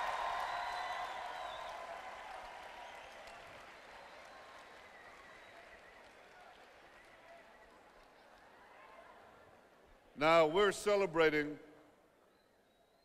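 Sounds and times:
audience applauding: 0:00.0 - 0:08.9.

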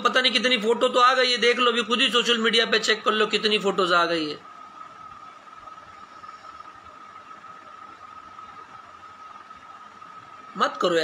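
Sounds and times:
faint high whine: 0:00.0 - 0:11.0
steady hiss: 0:00.0 - 0:11.0.

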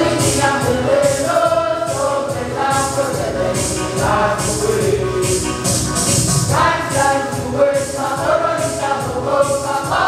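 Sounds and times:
group singing gospel song: 0:00.0 - 0:05.7, 0:06.3 - 0:10.0
keyboard accompaniment: 0:00.0 - 0:10.0
shaker percussion beat: 0:00.0 - 0:10.0.

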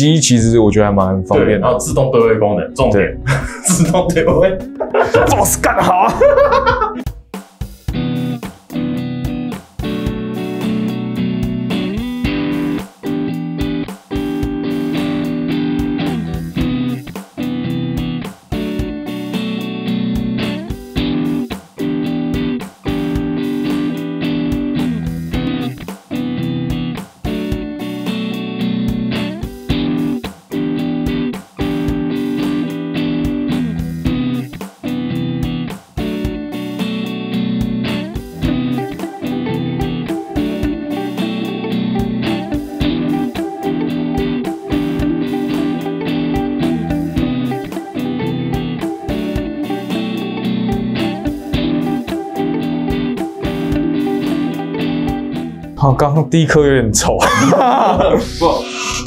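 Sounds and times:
electric guitar chords: 0:01.1 - 0:55.8, 0:57.2 - 0:59.0.

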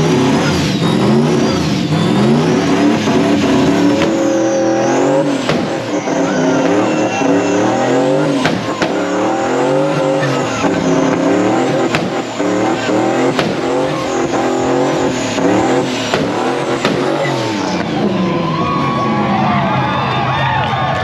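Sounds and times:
tyres squealing: 0:00.0 - 0:18.2
car engine revving: 0:00.0 - 0:20.3.

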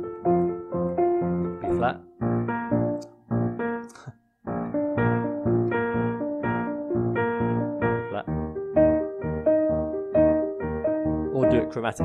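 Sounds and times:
digital piano playing ragtime chords: 0:00.0 - 0:12.0.

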